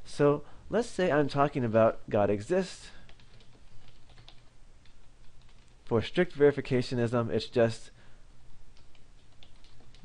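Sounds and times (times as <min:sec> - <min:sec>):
faint low hum: 0:00.0 - 0:10.0
keyboard typing: 0:03.1 - 0:05.8, 0:08.8 - 0:10.0.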